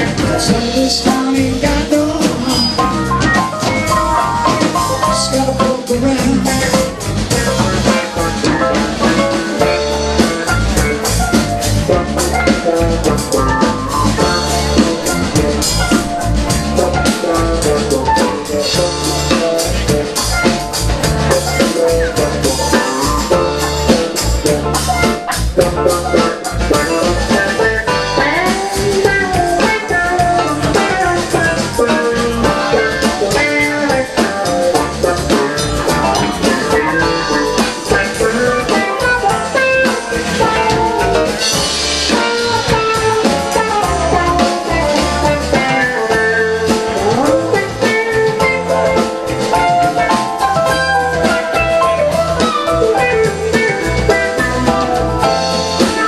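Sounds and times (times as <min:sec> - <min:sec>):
drum kit: 0:00.0 - 0:56.0
electric guitar lead: 0:00.0 - 0:56.0.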